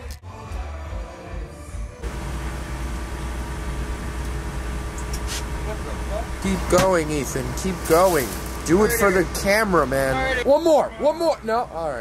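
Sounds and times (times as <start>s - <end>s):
music playing: 0.0s - 2.1s
vehicle engine and road rumble: 2.0s - 12.0s.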